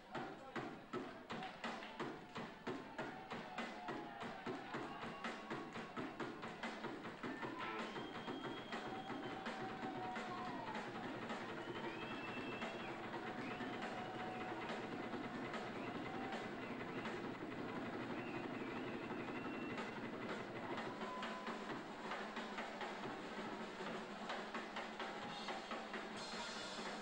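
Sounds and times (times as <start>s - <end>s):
drum and cymbal strikes: 0.0s - 27.0s.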